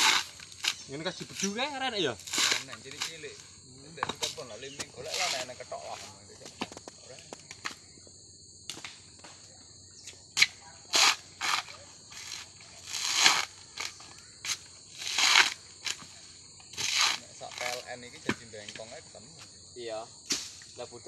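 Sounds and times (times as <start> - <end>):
coconut husk tearing: 0.0 - 3.4, 4.1 - 5.8, 10.4 - 16.1, 16.7 - 18.5.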